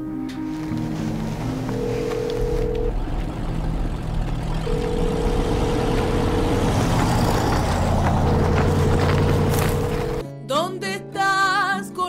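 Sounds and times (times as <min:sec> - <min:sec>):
low steady rumble: 0:01.0 - 0:10.2.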